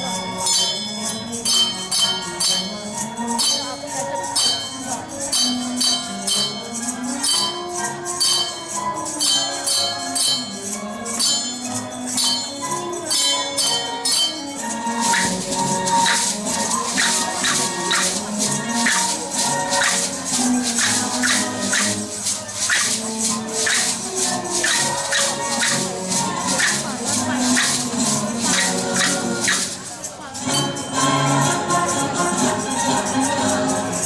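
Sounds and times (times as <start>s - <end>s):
shakers rattling: 0.0s - 34.0s
small cymbals: 0.0s - 34.0s
song with melody: 0.0s - 34.0s
wooden clappers: 0.0s - 34.0s.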